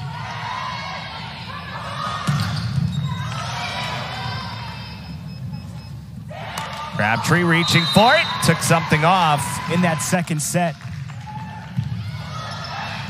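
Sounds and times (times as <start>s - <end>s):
players calling out: 0.0s - 13.0s
volleyball ball contact: 2.0s - 4.2s
sneakers squeaking on court floor: 2.0s - 8.5s.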